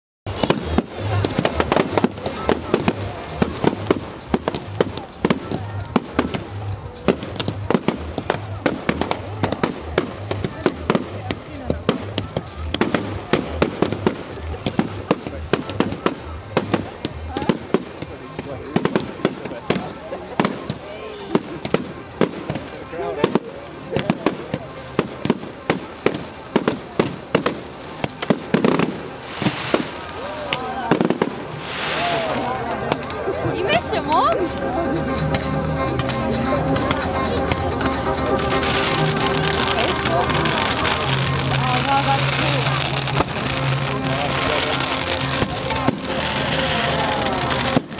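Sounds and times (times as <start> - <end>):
fireworks bangs: 0.3 - 34.6, 35.3 - 47.9.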